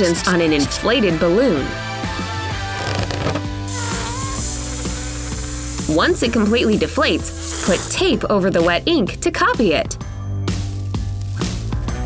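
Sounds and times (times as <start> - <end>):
background music: 0.0 - 12.0
air hissing from balloon: 2.7 - 8.2.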